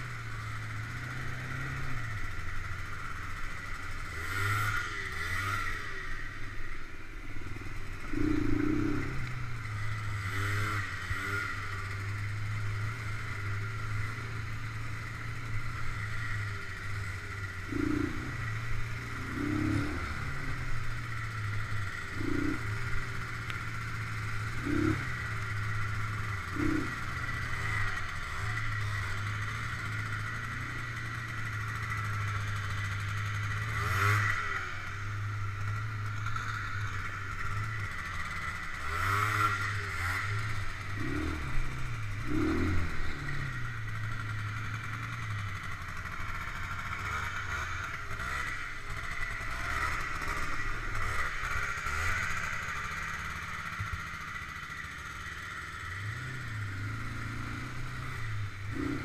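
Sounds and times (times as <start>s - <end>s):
quad bike engine revving: 0.0s - 59.0s.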